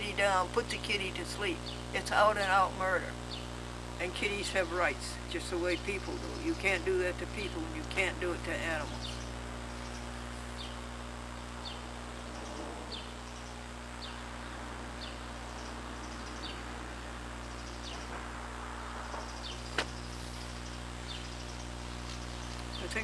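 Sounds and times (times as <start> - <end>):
bird chirping: 0.0 - 23.0
steady low hum: 0.0 - 23.0.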